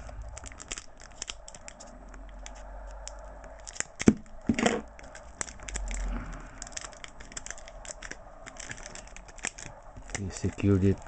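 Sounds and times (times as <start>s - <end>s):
plastic and tape crinkling: 0.0s - 11.0s.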